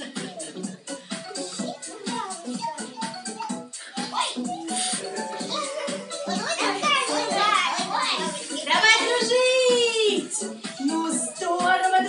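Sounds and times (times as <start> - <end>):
background music: 0.0 - 12.0
children calling out: 1.3 - 10.2.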